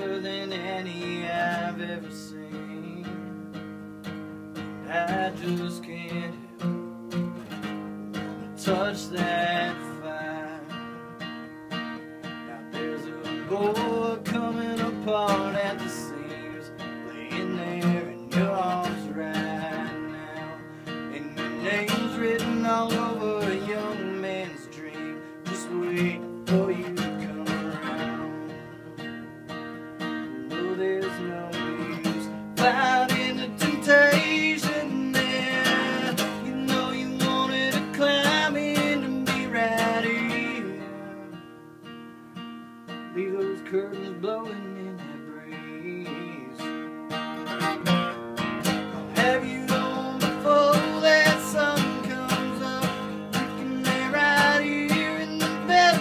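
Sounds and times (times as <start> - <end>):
acoustic guitar strumming and picking: 0.0 - 56.0.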